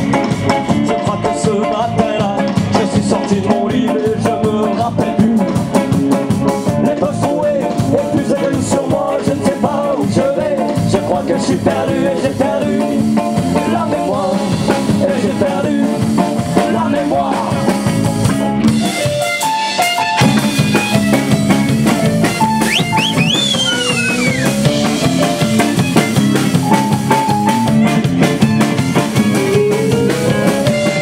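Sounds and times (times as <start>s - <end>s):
live band playing a song: 0.0s - 31.0s
high sliding notes: 22.5s - 24.8s.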